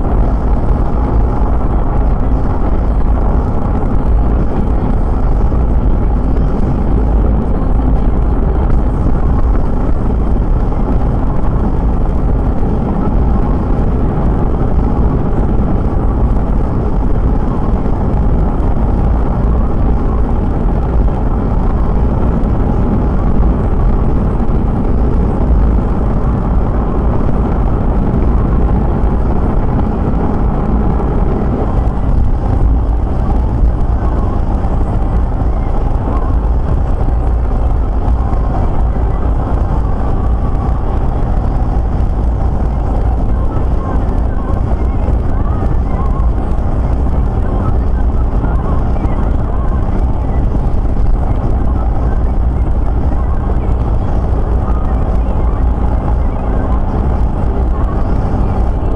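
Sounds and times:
car interior road and engine noise: 0.0 - 58.9.

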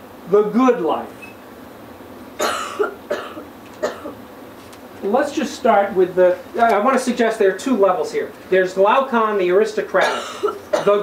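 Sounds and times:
person coughing: 2.4 - 4.2, 10.0 - 11.0.

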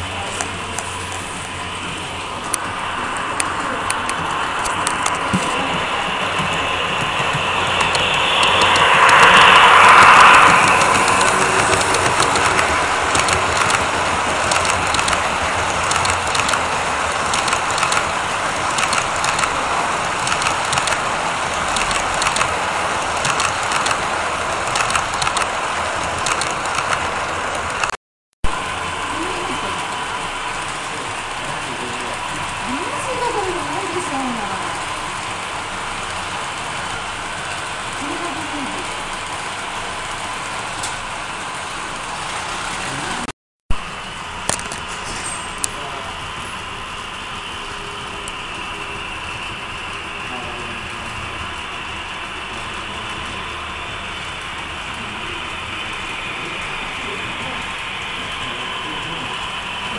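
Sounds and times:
model train running past: 0.0 - 27.9, 28.6 - 59.9
wheels ticking over rail joints: 10.4 - 27.9, 28.6 - 43.2.

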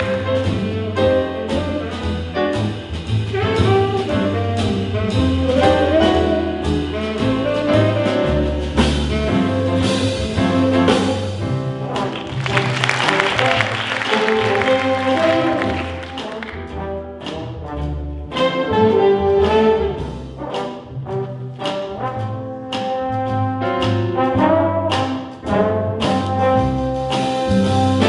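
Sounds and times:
rhythm section: 0.0 - 28.0
trombone line with bends: 0.0 - 28.0.

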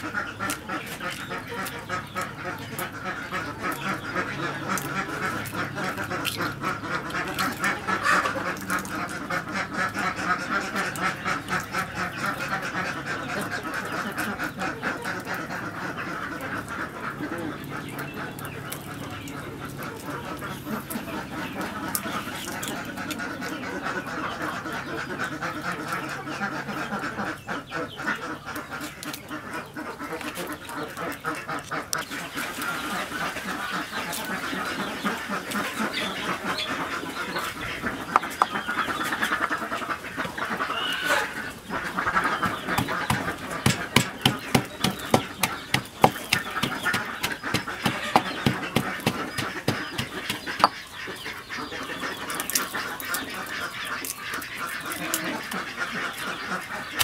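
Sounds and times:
birds chattering: 0.0 - 57.0
eggshell cracking: 42.6 - 50.8
stone pestle pounding in mortar: 42.8 - 50.8.

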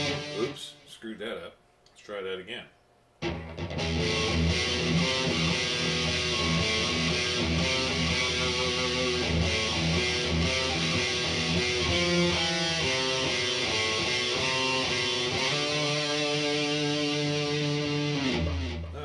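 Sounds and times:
distorted electric guitar riff: 0.0 - 0.8, 3.2 - 19.0.

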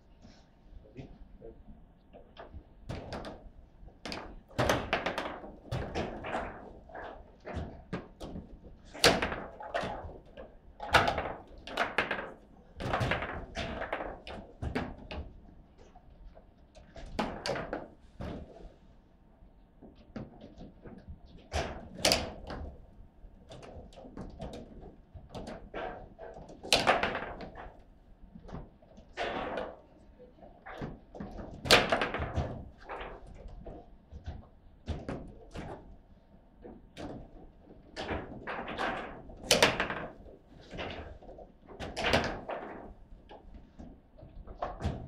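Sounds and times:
foosball ball clacks: 4.1 - 15.9, 16.8 - 18.6, 20.1 - 22.8, 23.5 - 27.8, 30.6 - 35.9, 36.6 - 45.0.

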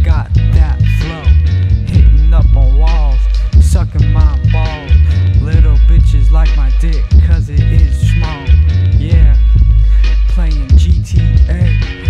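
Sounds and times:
rapping over heavy bass beat: 0.0 - 12.0.

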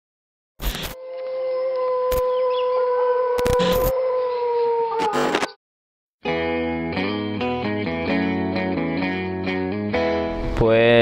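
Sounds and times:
dog-like howl: 1.0 - 5.5.

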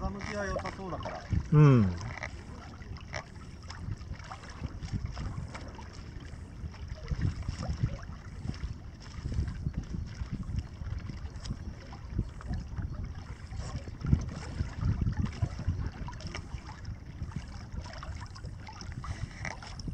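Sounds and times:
water splashing and lapping: 0.0 - 19.9
wind buffeting microphone: 0.0 - 19.9.

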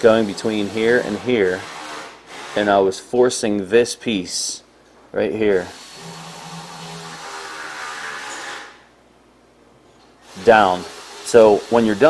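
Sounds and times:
mechanical hiss with faint hum: 0.0 - 12.0.

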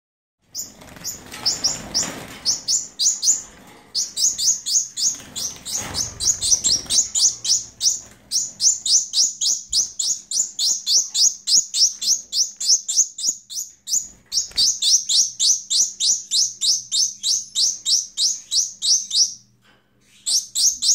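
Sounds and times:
young finch begging chirps: 0.6 - 19.4, 20.1 - 20.9.

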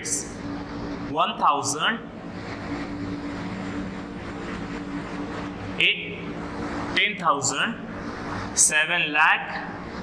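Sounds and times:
steady mechanical drone: 0.0 - 10.0.

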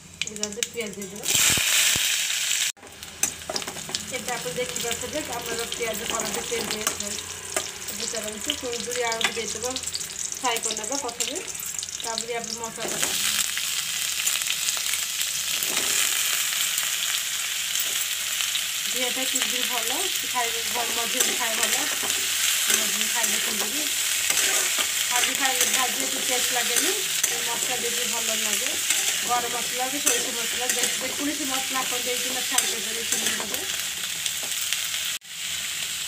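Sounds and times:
onions sizzling in hot oil: 0.0 - 36.0.

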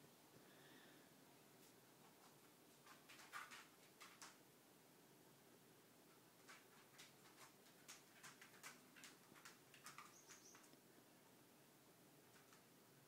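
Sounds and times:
faint clicks: 6.4 - 10.8.

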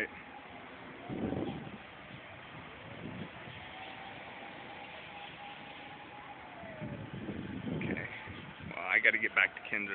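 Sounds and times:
outdoor traffic noise: 0.0 - 9.9.

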